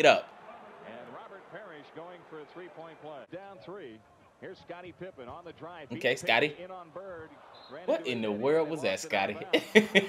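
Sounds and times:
faint arena background noise: 0.0s - 10.0s
man commentating: 0.0s - 10.0s.

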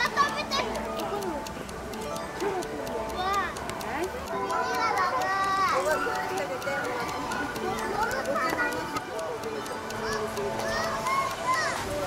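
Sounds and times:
outdoor background chatter: 0.0s - 12.0s
young children talking and calling out: 0.0s - 12.0s.

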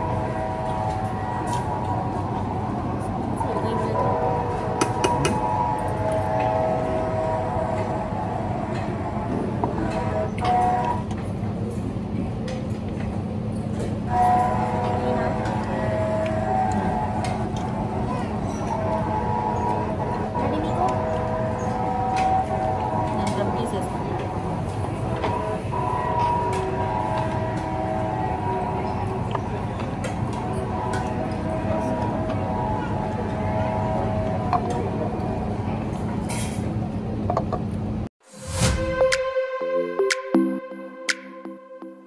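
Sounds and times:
restaurant din: 0.0s - 37.7s
train-like rumble: 0.0s - 38.6s
held chord of steady tones: 38.8s - 42.0s.

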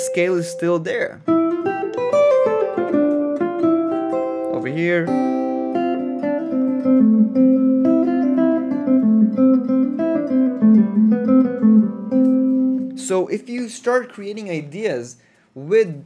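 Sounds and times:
clean electric guitar melody: 0.0s - 13.1s.

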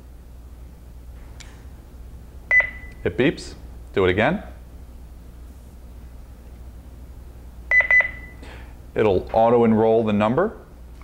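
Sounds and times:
alarm panel short high beeps: 7.7s - 8.4s.

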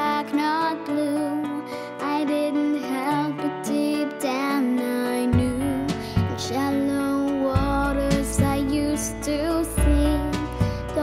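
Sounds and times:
acoustic guitar: 0.0s - 11.0s
girl singing: 0.0s - 11.0s.

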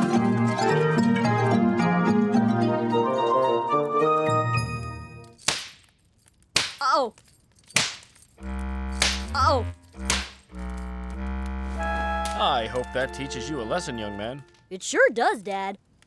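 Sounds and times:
spanking smacks: 5.4s - 6.9s, 7.6s - 8.2s, 10.0s - 10.5s
low hum: 8.2s - 13.2s.

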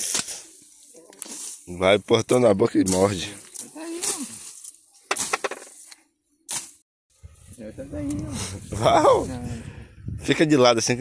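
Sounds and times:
grass and stems cracking: 2.8s - 6.8s.

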